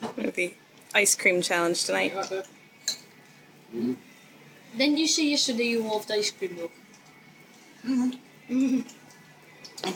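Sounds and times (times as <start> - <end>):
spoon clinking against glass: 2.8 - 3.1.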